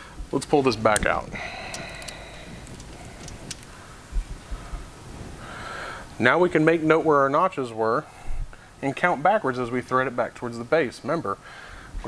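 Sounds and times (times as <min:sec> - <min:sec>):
dull low thumps: 0:01.0 - 0:05.6.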